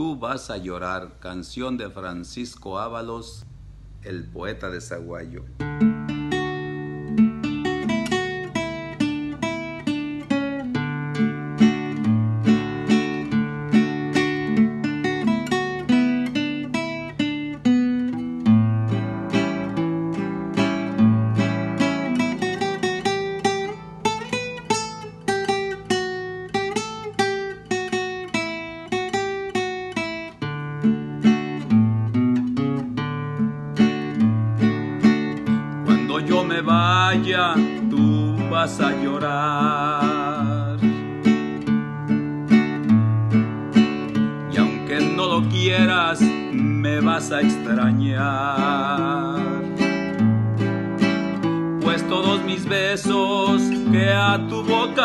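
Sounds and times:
acoustic guitar strumming: 0:03.4 - 0:55.0.

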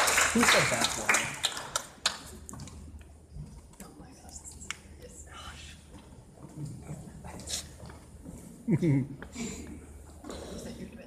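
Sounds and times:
audience applause: 0:00.0 - 0:02.2.

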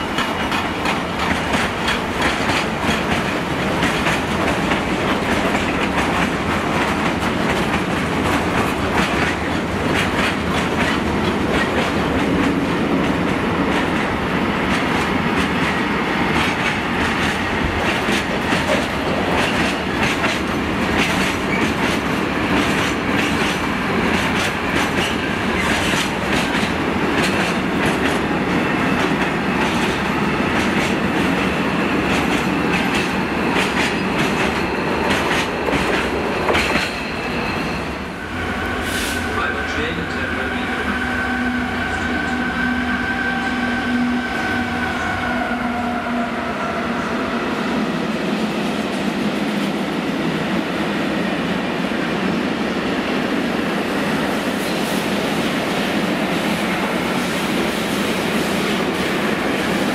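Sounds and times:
freight train rumbling past: 0:00.0 - 0:59.9.

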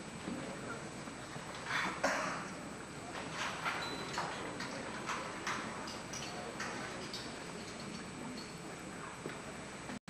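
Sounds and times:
faint steady high whine: 0:00.0 - 0:10.0.

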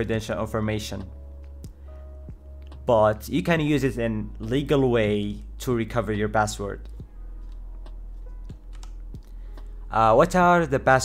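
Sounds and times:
computer keyboard clicks: 0:08.5 - 0:09.3.

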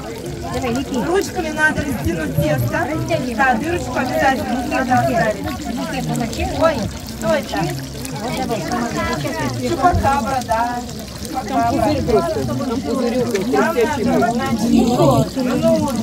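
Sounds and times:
several people talking: 0:00.0 - 0:16.0.

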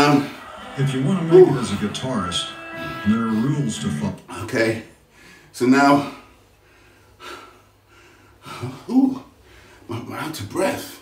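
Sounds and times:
man breathing hard: 0:06.6 - 0:08.8.

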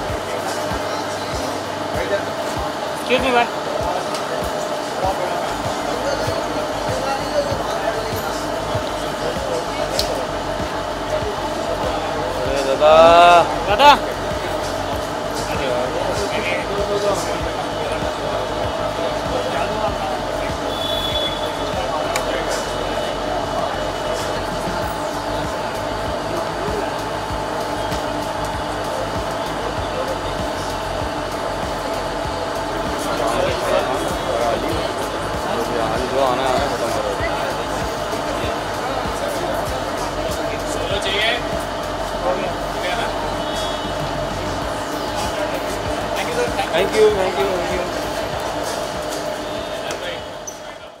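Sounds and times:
people talking over one another: 0:00.0 - 0:51.0
steady even noise: 0:00.0 - 0:51.0.

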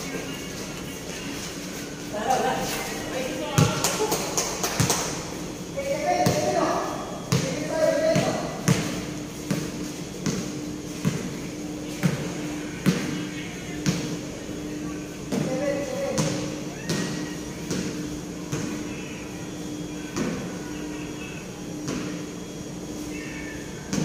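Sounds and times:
basketball bouncing on court: 0:03.5 - 0:04.1, 0:06.2 - 0:06.6, 0:07.3 - 0:11.4, 0:12.0 - 0:13.1, 0:15.3 - 0:18.8.

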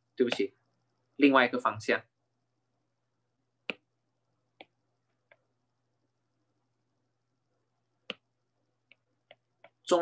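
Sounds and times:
stylus tapping glass screen: 0:03.6 - 0:03.9, 0:08.0 - 0:09.8.

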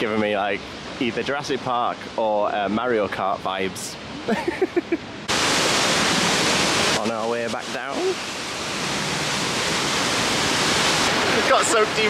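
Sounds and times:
waterfall roaring: 0:00.0 - 0:12.0
person laughing: 0:04.3 - 0:05.1.

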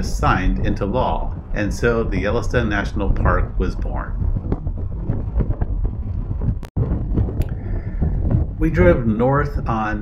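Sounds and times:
low road rumble: 0:00.0 - 0:10.0
wind rushing over microphone: 0:00.0 - 0:10.0.

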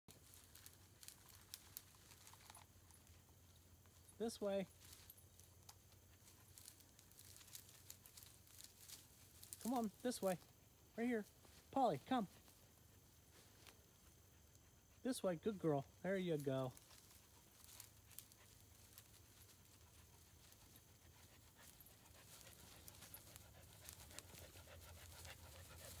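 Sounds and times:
small crackles: 0:00.1 - 0:10.5, 0:16.4 - 0:26.0
faint rustles and ticks: 0:00.1 - 0:26.0
dog panting: 0:16.8 - 0:26.0.

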